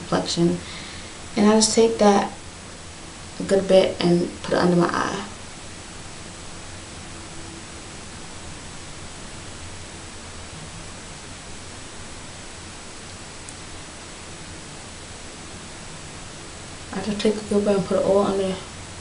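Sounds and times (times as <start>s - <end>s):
faint low hum: 0.0s - 19.0s
room tone hiss: 0.0s - 19.0s.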